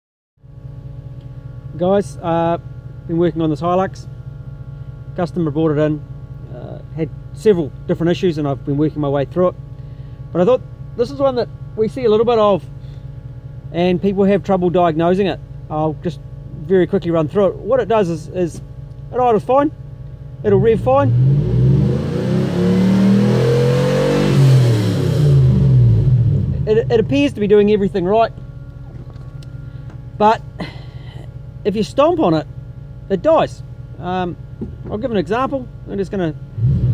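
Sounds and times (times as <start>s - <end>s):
car engine idling: 0.4s - 36.9s
car engine revving: 20.4s - 31.6s, 33.9s - 36.9s.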